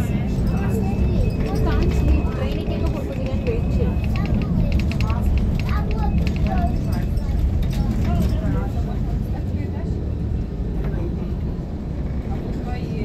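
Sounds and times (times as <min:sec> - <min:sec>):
car interior road and engine noise: 0:00.0 - 0:13.0
faint voices talking: 0:00.0 - 0:13.0.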